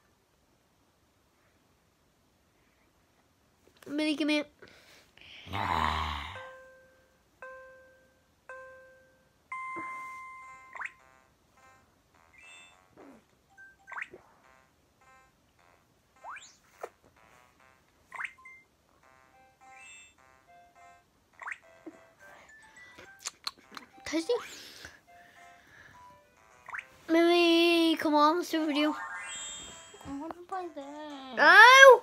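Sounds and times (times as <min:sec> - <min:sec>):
electronic toy beeps: 0:09.5 - 0:12.9, 0:17.2 - 0:23.2
rising electronic swoops: 0:29.0 - 0:30.0.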